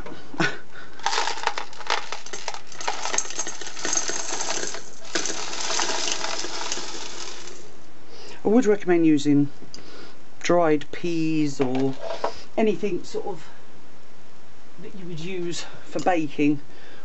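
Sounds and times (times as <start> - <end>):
stone beads rattling into glass vase: 1.0 - 7.8.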